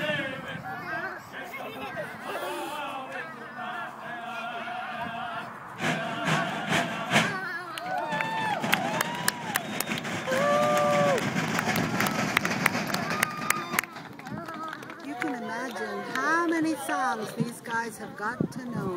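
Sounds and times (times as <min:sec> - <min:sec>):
people talking: 0:00.0 - 0:04.6, 0:12.9 - 0:18.9
men singing over loudspeakers: 0:00.0 - 0:07.4.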